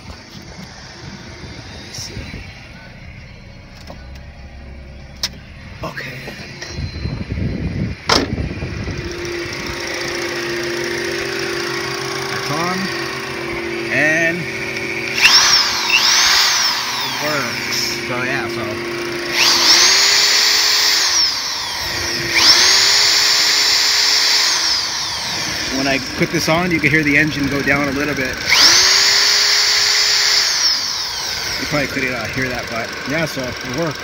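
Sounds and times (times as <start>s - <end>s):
electric drill spinning: 0.0s - 2.8s, 6.4s - 34.0s
car engine idling: 0.0s - 34.0s
starter cranking car engine: 0.0s - 34.0s.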